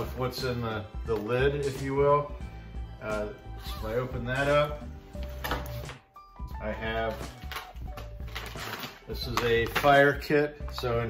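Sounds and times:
plastic pouch handled: 7.0s - 10.1s.

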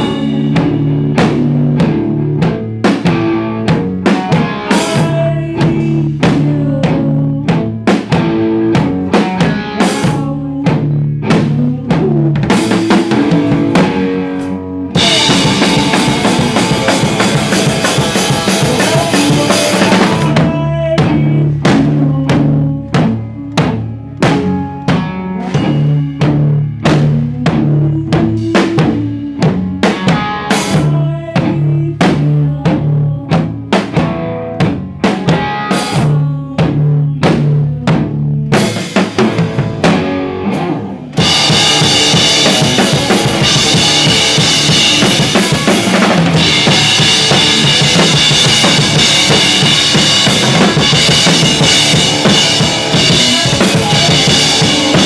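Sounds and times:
electric guitar notes: 0.0s - 31.9s, 33.4s - 37.2s, 38.1s - 55.0s
live rock band playing: 0.0s - 55.0s
drum hits: 15.0s - 22.2s, 38.6s - 55.0s.

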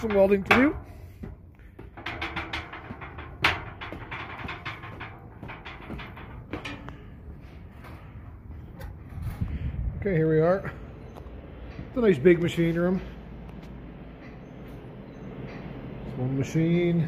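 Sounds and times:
footsteps on steel stairs: 0.0s - 9.8s.

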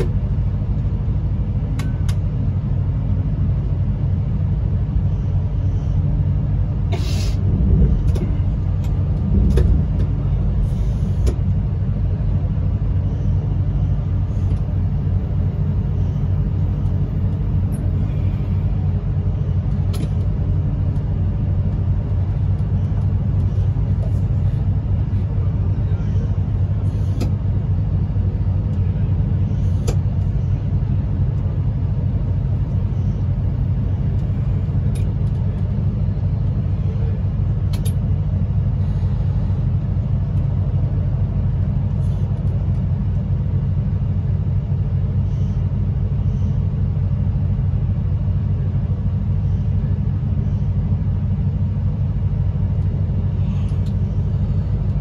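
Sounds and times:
train cab rumble: 0.0s - 55.0s.

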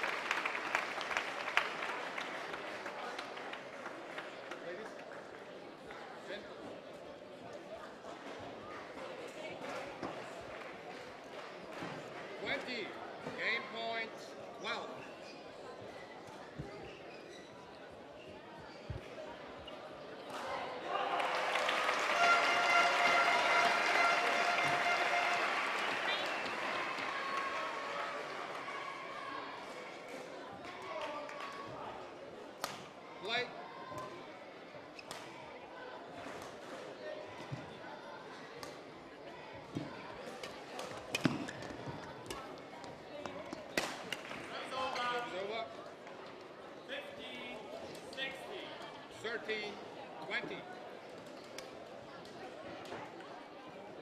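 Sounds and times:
crowd noise: 0.0s - 54.0s
shoe squeaks on court: 16.6s - 19.0s
racket hitting shuttlecock: 41.1s - 41.6s.

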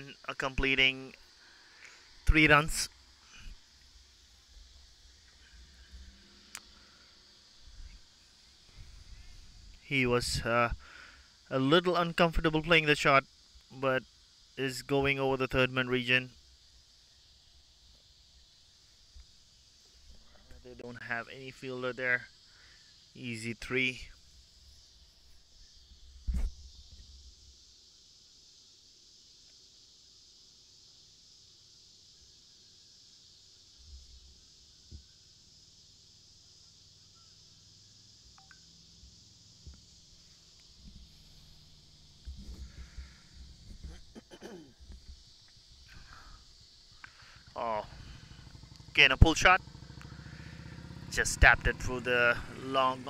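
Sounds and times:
insects chorus: 0.0s - 53.0s.

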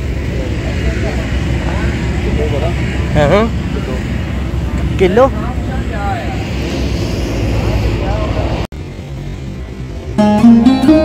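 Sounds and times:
faint voices: 0.0s - 9.8s
outdoor background rumble and hiss: 0.0s - 11.0s.

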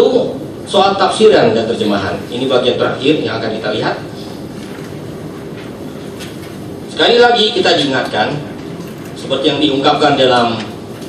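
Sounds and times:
meeting room hiss and hum: 0.0s - 11.0s.

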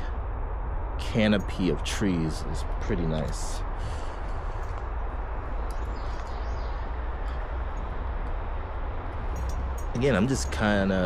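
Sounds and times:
low rumble: 0.0s - 11.0s
light rain hiss: 1.1s - 11.0s.

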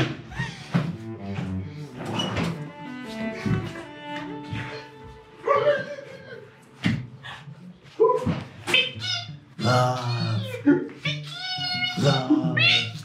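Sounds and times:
soft background music: 0.0s - 13.0s
person's wordless vocal sounds: 9.6s - 11.0s, 11.9s - 13.0s.

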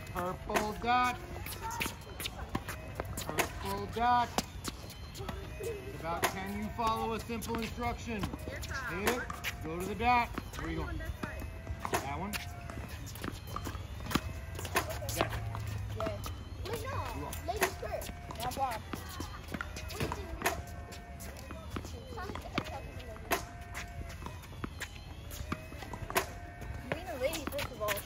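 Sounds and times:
balls bouncing on hard court: 0.0s - 28.0s
tennis balls struck by rackets: 0.0s - 28.0s.

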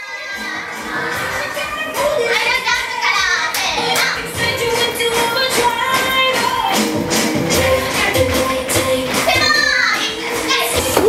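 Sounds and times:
children chattering and calling out: 0.0s - 6.8s, 9.1s - 11.0s
dance music: 0.0s - 11.0s.

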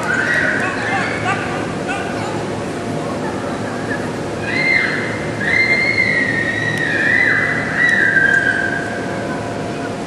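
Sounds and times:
child laughing: 3.2s - 4.2s.

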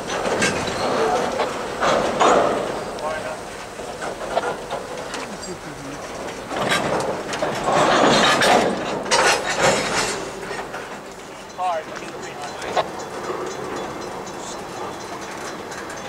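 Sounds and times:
freight car wheels clattering: 0.0s - 16.0s.

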